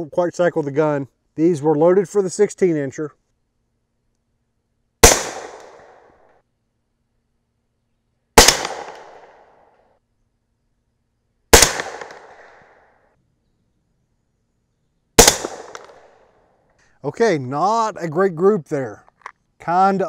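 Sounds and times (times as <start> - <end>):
suppressed rifle shots: 5.0 - 6.2, 8.4 - 9.6, 11.5 - 12.9, 15.2 - 16.2.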